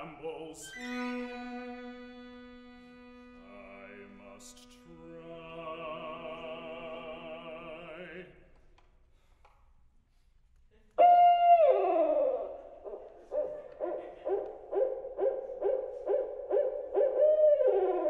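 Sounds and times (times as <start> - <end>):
owl hooting over loudspeakers: 11.0 - 18.0.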